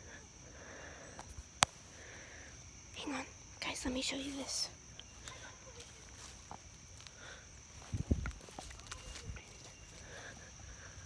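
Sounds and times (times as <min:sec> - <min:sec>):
soft breathing: 0:00.0 - 0:02.8, 0:07.0 - 0:11.0
high-pitched insect drone: 0:00.0 - 0:11.0.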